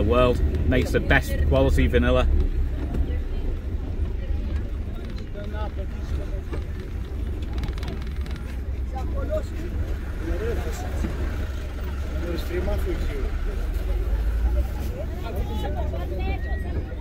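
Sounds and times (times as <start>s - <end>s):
vehicle driving rumble: 0.0s - 17.0s
voices talking: 0.0s - 17.0s.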